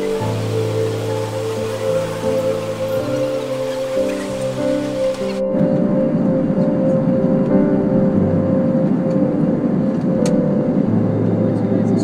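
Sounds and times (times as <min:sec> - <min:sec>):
ambient music with held notes: 0:00.0 - 0:12.0
jet airliner cabin noise: 0:00.0 - 0:12.0.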